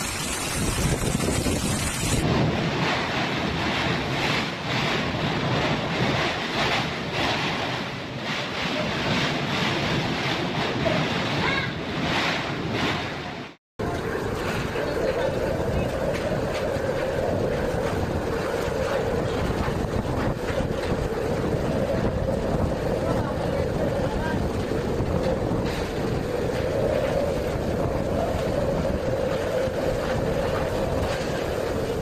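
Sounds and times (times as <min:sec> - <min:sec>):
strong wind and heavy rain: 0:00.0 - 0:32.0.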